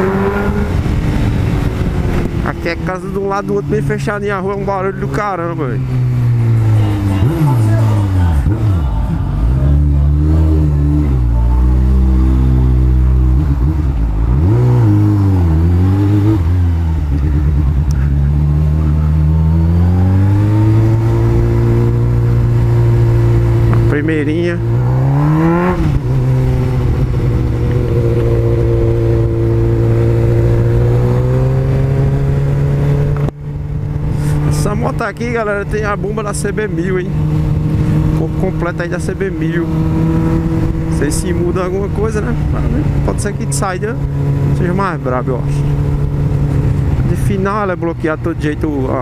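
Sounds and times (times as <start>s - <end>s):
motorcycle engine revving: 0.0s - 49.0s.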